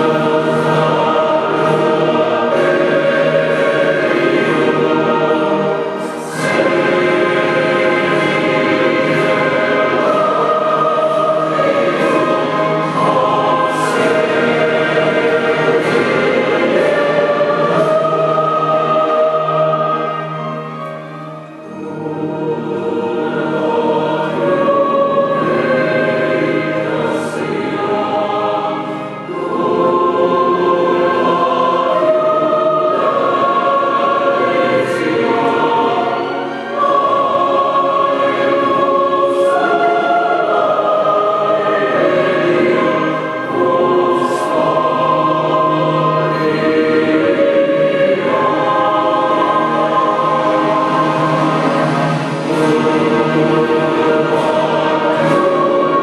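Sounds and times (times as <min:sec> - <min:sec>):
choir singing solemn piece: 0:00.0 - 0:56.0.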